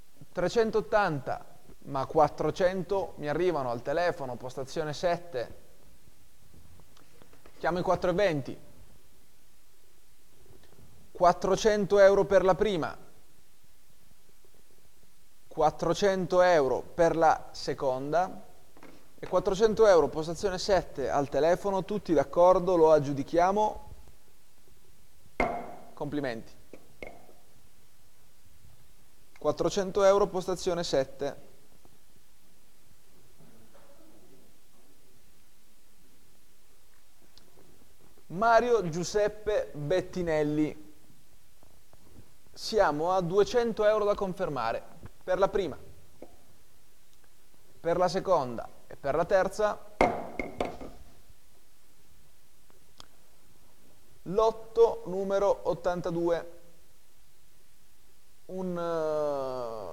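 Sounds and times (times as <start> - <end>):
light gavel taps: 25.4 - 25.8, 26.7 - 27.4
gavel strike with ringing: 25.4 - 25.9, 50.0 - 51.0.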